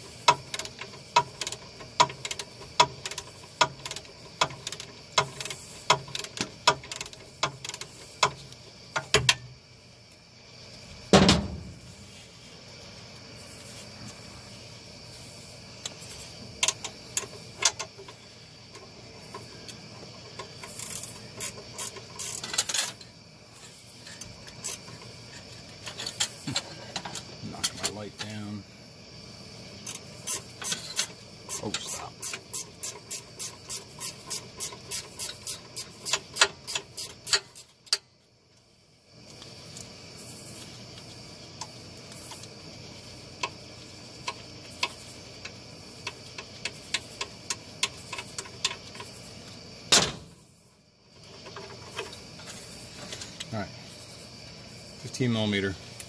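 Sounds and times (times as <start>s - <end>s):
ratchet clicks: 0.0s - 9.5s, 16.6s - 23.1s, 24.0s - 28.4s, 29.8s - 38.1s, 43.4s - 49.3s.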